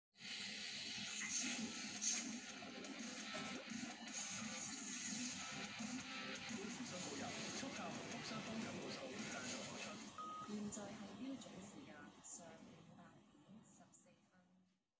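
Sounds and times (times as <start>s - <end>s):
background music from tv: 0.2s - 14.4s
voice-over: 6.5s - 13.2s.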